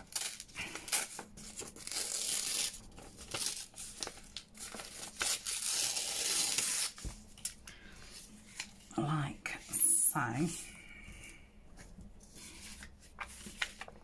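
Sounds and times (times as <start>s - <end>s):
paper tearing: 0.0s - 7.0s
paper rustling and tapping: 11.8s - 14.0s.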